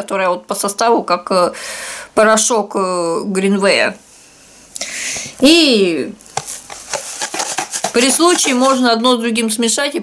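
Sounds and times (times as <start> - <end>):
cardboard box clicks and rustles: 6.3 - 8.9.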